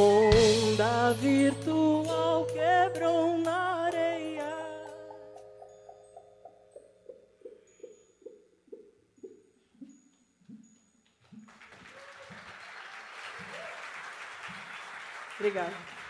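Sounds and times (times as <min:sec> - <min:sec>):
audience applauding: 0:11.4 - 0:16.0.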